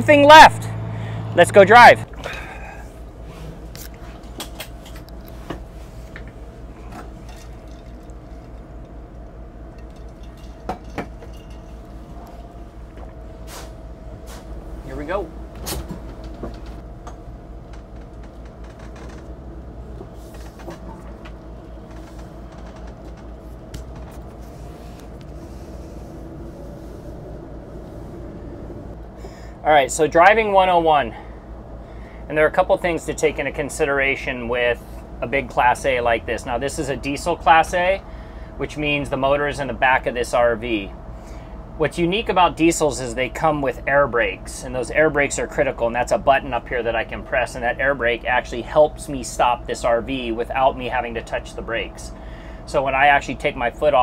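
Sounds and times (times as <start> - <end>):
diesel engine humming: 0.0 - 54.0.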